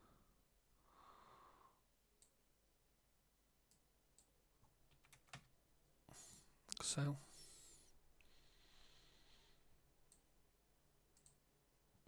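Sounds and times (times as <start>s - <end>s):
person speaking: 6.6s - 7.6s
computer mouse clicks: 11.1s - 11.4s.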